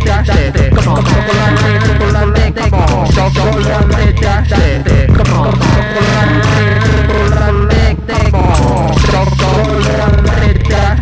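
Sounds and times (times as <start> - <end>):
heavy bass line: 0.0 - 11.0
layered vocal loops: 0.0 - 11.0
steady beat: 0.0 - 11.0.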